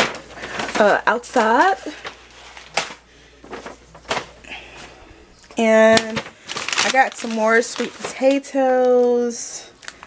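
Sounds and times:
groceries knocking: 0.0 - 10.0
plastic bag rustling: 0.0 - 10.0.

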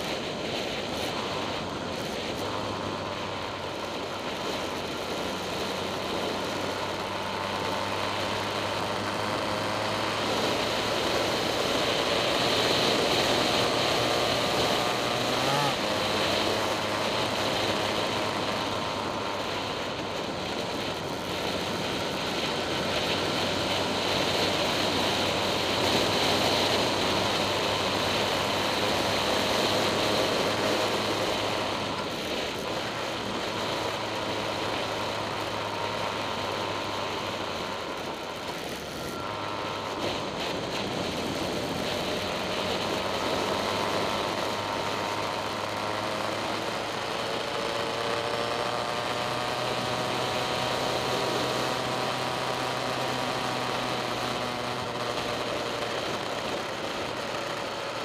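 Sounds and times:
vehicle engine running: 0.0 - 58.0.

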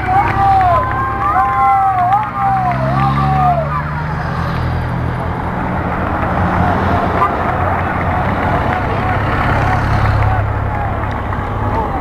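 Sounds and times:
engine hum: 0.0 - 12.0.

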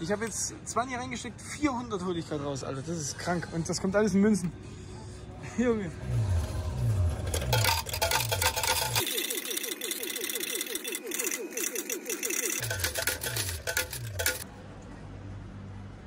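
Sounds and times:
coins clattering into metal tray: 7.1 - 14.4
slot machine electronic tune: 7.3 - 14.4.

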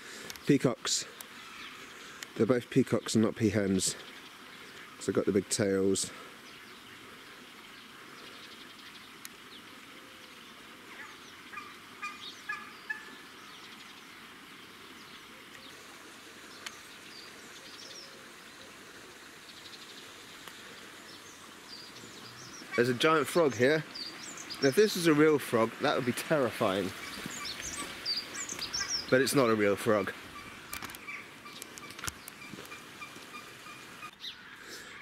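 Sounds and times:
peacock calls: 1.3 - 2.2, 10.0 - 13.4, 20.6 - 25.2, 25.8 - 35.0.

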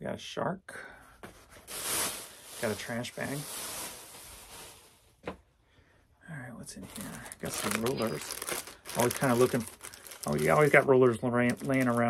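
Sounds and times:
plastic bag and fabric rustling: 1.4 - 5.1, 6.8 - 12.0.

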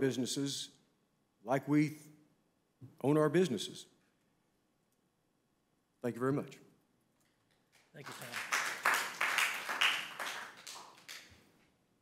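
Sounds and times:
people clapping: 7.5 - 11.6.

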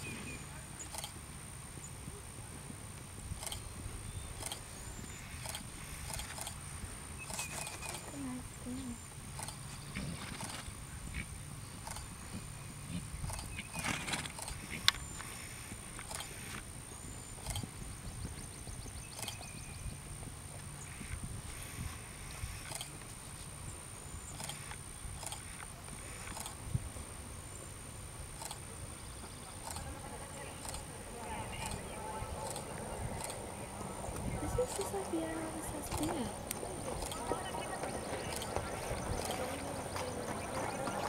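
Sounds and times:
small birds chirping: 3.3 - 26.6, 28.4 - 41.0
hoofbeats on grass: 29.2 - 41.0.

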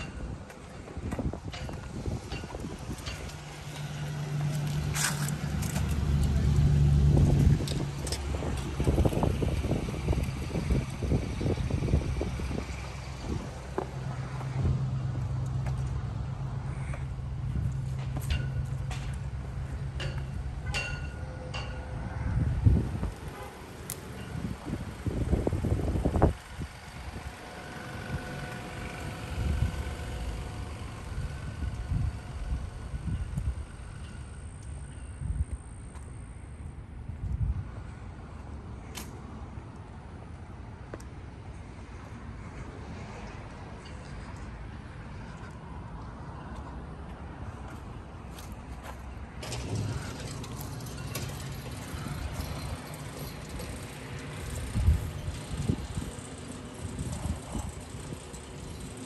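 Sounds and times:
wind buffeting microphone: 0.0 - 15.0, 21.6 - 35.8, 49.4 - 59.0
vehicle engine humming: 0.0 - 59.0.

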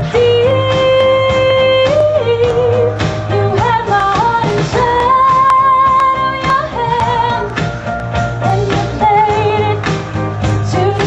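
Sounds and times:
pop backing track: 0.0 - 11.0.

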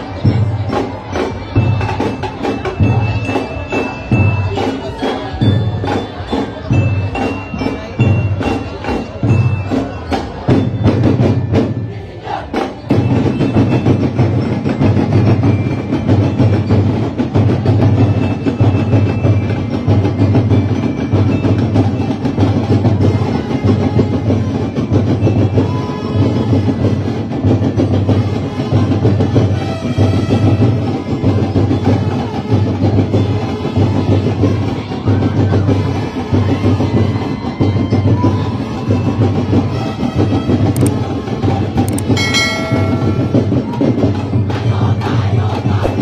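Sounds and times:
drum ensemble playing fast beat: 0.0 - 46.0
held pitched note: 42.1 - 44.0.

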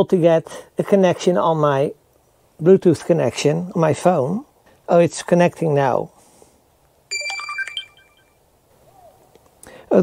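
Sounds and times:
smartphone alert jingle: 7.1 - 8.4.

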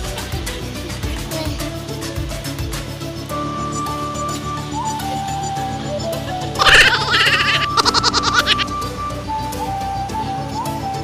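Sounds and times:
background music with held notes: 0.0 - 11.0
woman's excited shriek: 6.6 - 8.7.

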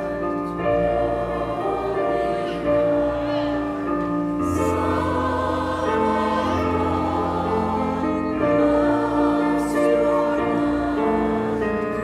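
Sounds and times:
church choir singing a hymn: 0.0 - 12.0.

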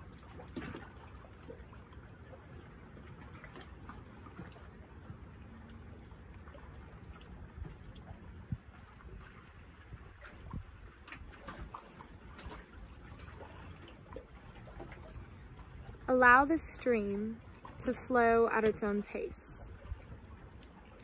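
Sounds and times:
small splashes: 0.0 - 21.0
water lapping against wooden dock: 0.0 - 21.0
wind rumble on microphone: 2.2 - 16.1, 19.5 - 21.0.

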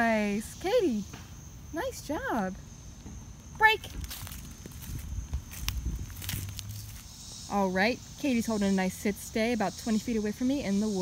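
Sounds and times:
high-pitched insect drone: 0.0 - 11.0
footsteps on dry leaves: 3.8 - 7.3.

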